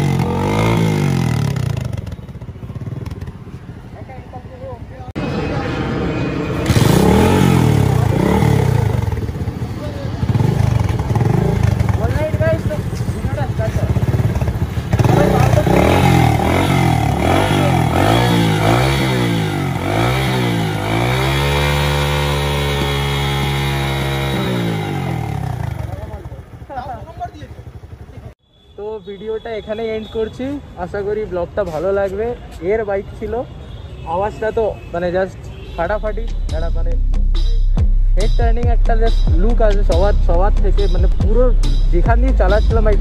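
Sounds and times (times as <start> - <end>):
small engine revving: 14.9 - 25.9.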